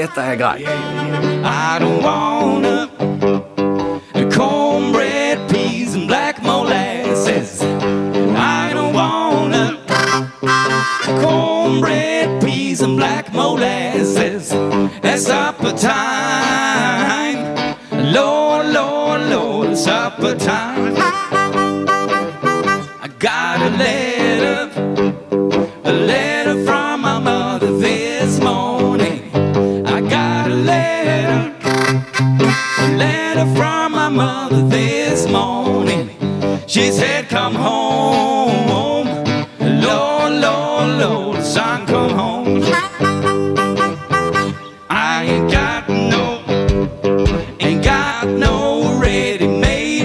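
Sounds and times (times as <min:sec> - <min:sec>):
lead melody bending in pitch: 0:00.0 - 0:01.8, 0:09.9 - 0:12.0, 0:21.0 - 0:23.0, 0:31.6 - 0:33.2, 0:42.6 - 0:44.9
acoustic blues band playing: 0:00.0 - 0:50.0
guitar: 0:00.0 - 0:50.0.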